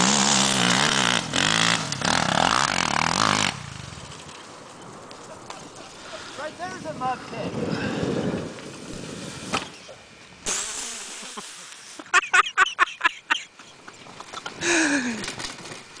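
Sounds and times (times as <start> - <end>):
quad engine running under load: 0.0 - 4.3
sharp vocal bursts: 10.4 - 11.7.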